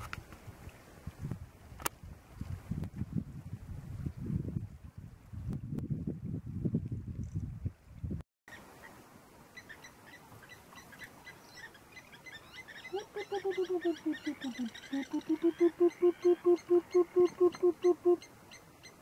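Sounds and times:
small birds chirping: 9.5s - 19.0s.

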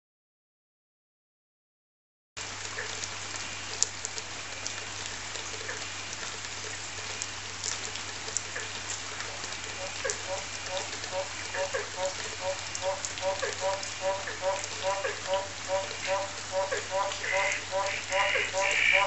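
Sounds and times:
chorus of frogs calling: 9.7s - 19.0s
nearby frog short calls: 9.8s - 19.0s.

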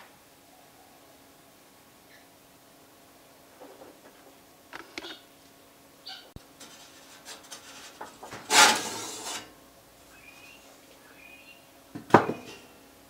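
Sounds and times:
metal lid scraping and rattling: 6.6s - 9.6s.

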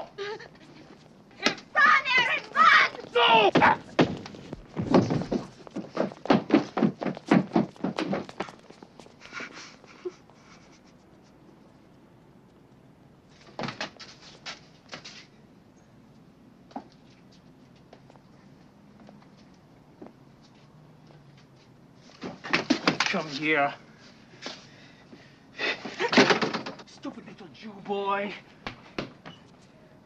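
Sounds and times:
heavy thuds and footsteps: 1.4s - 9.3s.

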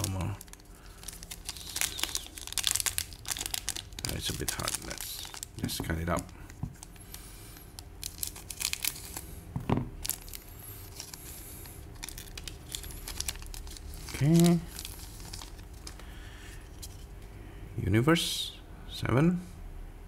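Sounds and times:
foil wrapper crinkling and tearing: 0.0s - 9.4s, 10.0s - 16.2s.

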